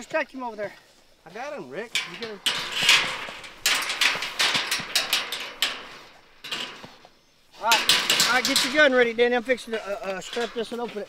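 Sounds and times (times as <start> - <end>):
metal rod knocking on mesh: 2.0 - 6.9, 7.7 - 9.1
wire-mesh cage trap rattling: 2.0 - 7.0, 7.6 - 11.0.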